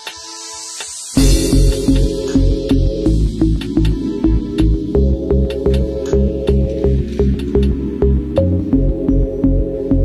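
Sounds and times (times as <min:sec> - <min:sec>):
hi-hat ticks: 0:00.0 - 0:06.6, 0:07.2 - 0:07.8
bass line: 0:01.2 - 0:10.0.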